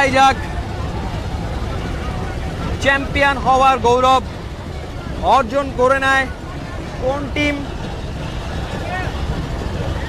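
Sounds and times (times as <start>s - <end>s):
low rumble of outdoor noise: 0.0s - 10.0s.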